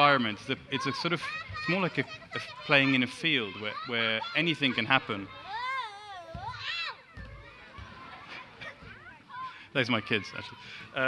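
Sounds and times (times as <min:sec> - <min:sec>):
children squealing and calling out: 0:00.5 - 0:11.0.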